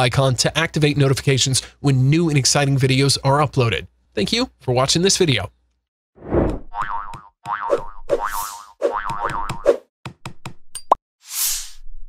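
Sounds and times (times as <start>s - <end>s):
cartoon springy boings: 6.7s - 9.8s.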